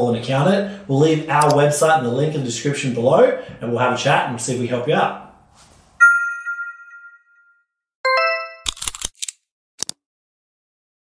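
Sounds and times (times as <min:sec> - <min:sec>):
bell-like chime: 0:06.0 - 0:08.7
bright two-struck chime: 0:06.0 - 0:08.7.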